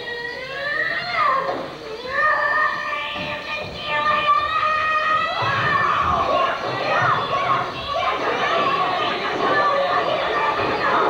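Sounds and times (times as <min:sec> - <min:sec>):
faint music: 0:00.0 - 0:11.0
people yelling: 0:00.5 - 0:11.0.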